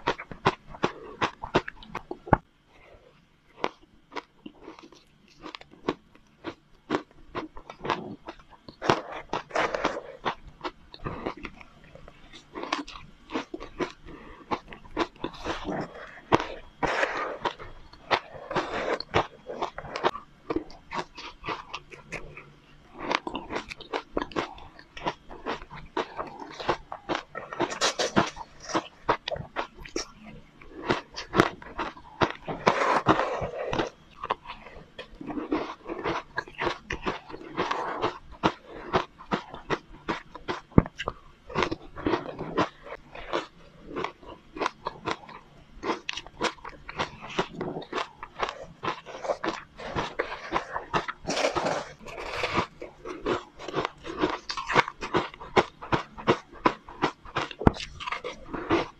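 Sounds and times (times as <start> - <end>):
crunching and chewing ice: 0.0 - 58.9.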